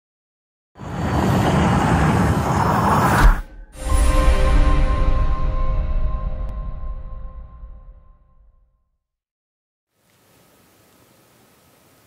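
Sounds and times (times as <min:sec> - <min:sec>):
rushing whoosh with low rumble: 0:00.8 - 0:04.1.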